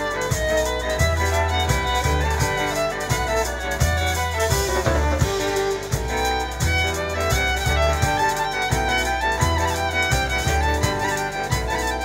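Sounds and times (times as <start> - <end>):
accordion: 0.0 - 12.0
acoustic guitar: 0.0 - 12.0
double bass notes: 0.0 - 12.0
drum kit: 0.0 - 12.0
violin: 0.0 - 12.0.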